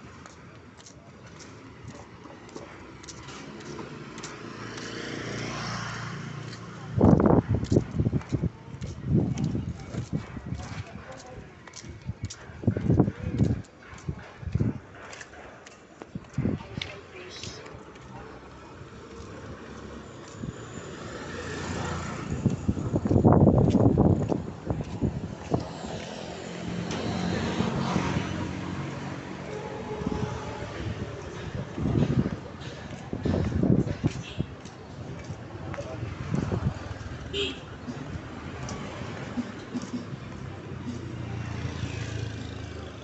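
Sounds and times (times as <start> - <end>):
vehicle passing: 1.6 - 10.5, 16.4 - 43.0.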